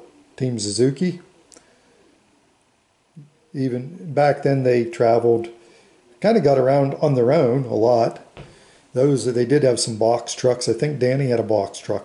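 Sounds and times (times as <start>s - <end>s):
man narrating: 0.0s - 1.2s, 3.6s - 5.6s, 6.2s - 8.3s, 9.0s - 12.0s.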